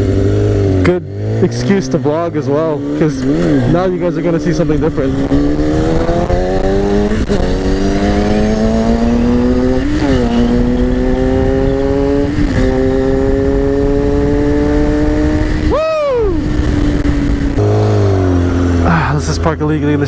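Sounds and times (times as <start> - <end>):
motorbike engine revving: 0.0 - 20.0
wind rumble: 2.1 - 18.9.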